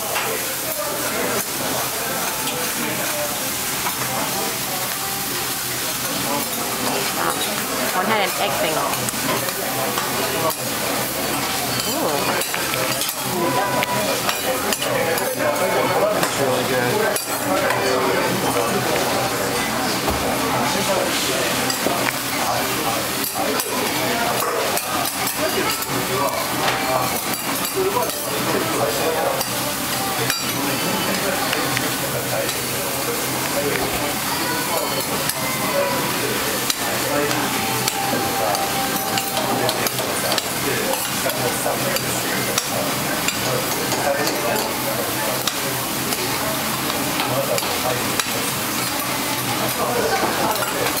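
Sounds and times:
food sizzling on a griddle: 0.0 - 51.0.

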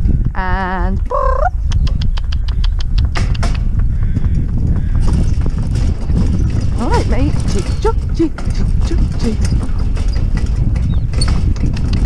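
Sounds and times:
hooves clip-clopping: 1.7 - 12.0
cart rolling over gravel: 4.4 - 12.0.

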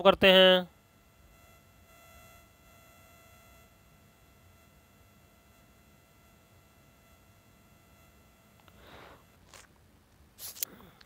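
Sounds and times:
faint steady high tones: 0.0 - 10.2.

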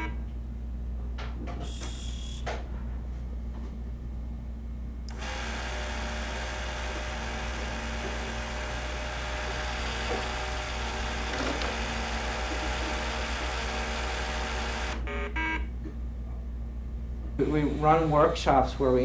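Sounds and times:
constant low hum: 0.0 - 19.0
small electric motors whirring: 5.1 - 15.0.

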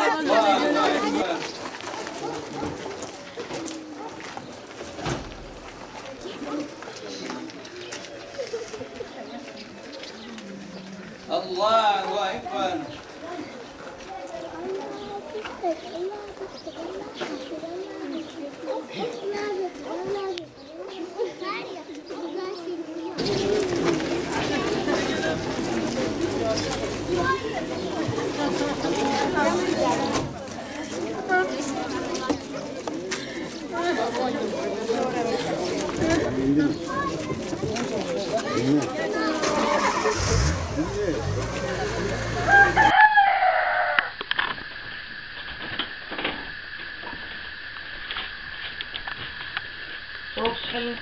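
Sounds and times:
crowd of voices: 0.0 - 43.0
engine running: 39.7 - 42.9
rooster crowing: 42.1 - 44.2.

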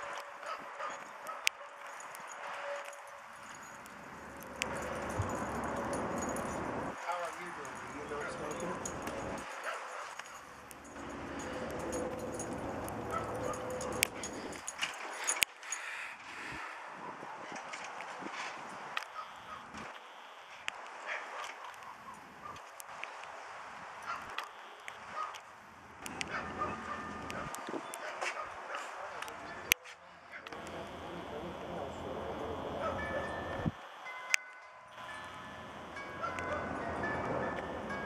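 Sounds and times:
dog barking: 0.0 - 1.9, 8.0 - 10.6, 12.9 - 14.6, 19.1 - 19.6, 21.0 - 22.7, 24.0 - 24.4, 25.1 - 25.4, 26.2 - 30.5, 32.8 - 33.2, 36.2 - 37.0.

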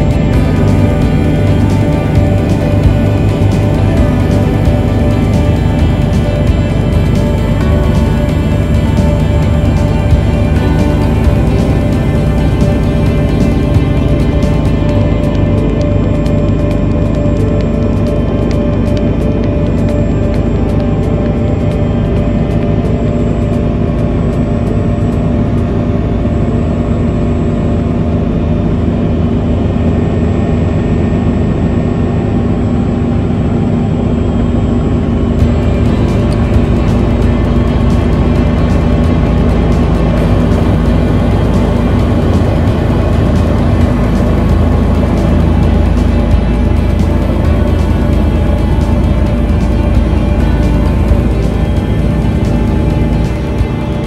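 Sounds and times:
aircraft engines droning: 0.0 - 54.0
background music: 0.0 - 54.0.

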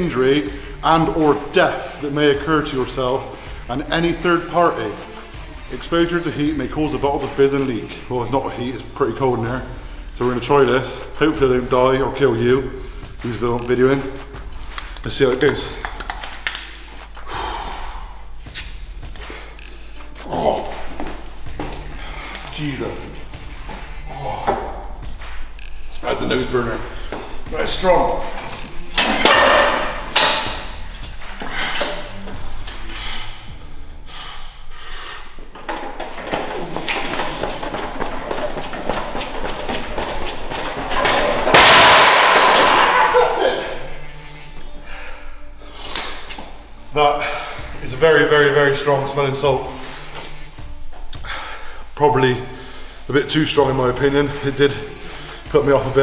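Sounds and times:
man breathing hard: 0.5 - 0.8, 17.2 - 18.4, 31.4 - 35.6, 44.2 - 45.9, 51.2 - 53.1, 55.0 - 55.5
sharp noisy breath: 17.2 - 18.6, 32.7 - 35.4
man sniffing sharply: 32.9 - 35.4.

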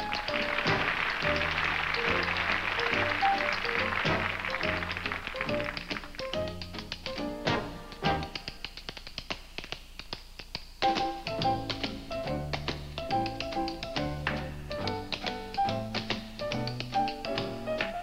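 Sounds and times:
live dance band: 0.0 - 18.0
tap shoes on hard floor: 0.4 - 18.0.

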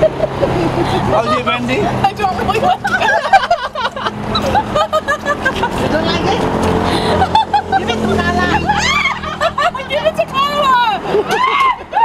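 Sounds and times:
vehicle engine hum: 0.0 - 11.9.

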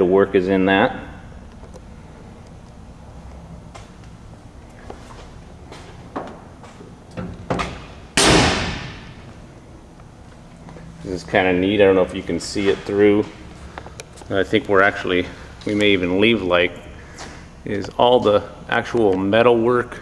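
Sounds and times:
steady low hum: 0.0 - 20.0
loud slam: 7.6 - 9.2.

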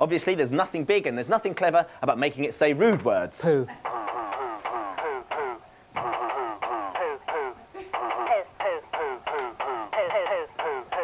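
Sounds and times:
toy dog playing back recorded voice: 4.1 - 11.0.

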